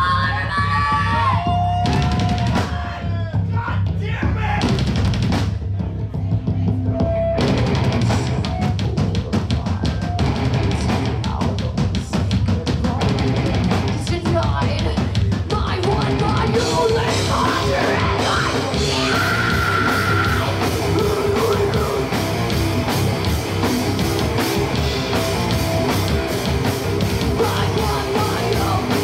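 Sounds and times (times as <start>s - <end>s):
fast drum beat: 0.0s - 29.0s
heavy metal band playing: 0.0s - 29.0s
person singing: 7.0s - 22.2s, 27.2s - 29.0s.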